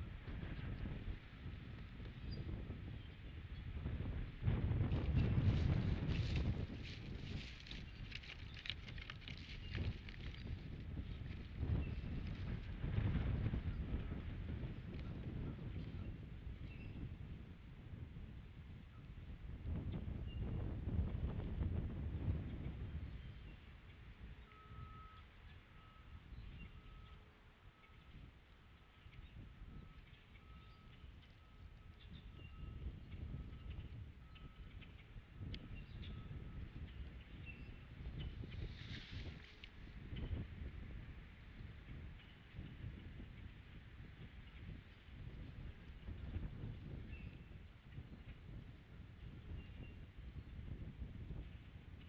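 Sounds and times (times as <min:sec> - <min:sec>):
wind rumble on microphone: 0:00.0 - 0:52.0
faint high beep: 0:24.4 - 0:28.1.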